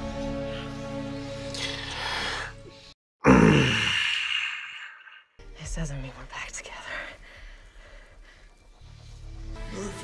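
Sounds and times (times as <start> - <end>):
person sighing: 3.2 - 5.2.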